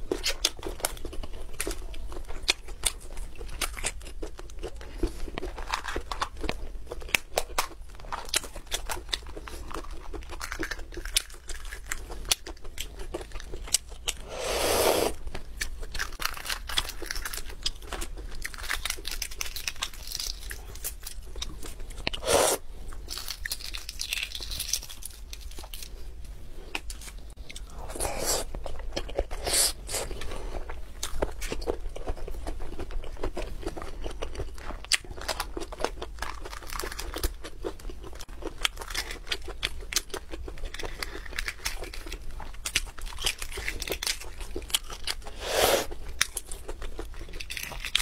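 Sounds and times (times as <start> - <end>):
chewing and wet mouth sounds: 0.0 - 48.0
eggshell crackling and tearing: 15.0 - 25.9.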